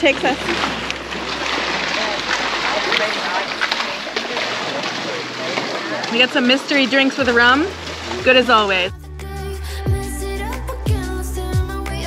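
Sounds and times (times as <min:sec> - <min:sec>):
faint voices: 0:00.0 - 0:08.9
pool water: 0:00.0 - 0:12.0.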